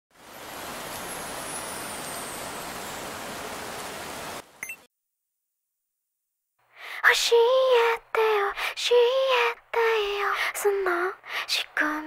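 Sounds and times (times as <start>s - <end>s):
steady static hiss: 0.2s - 4.6s
brief blips: 4.6s - 4.9s.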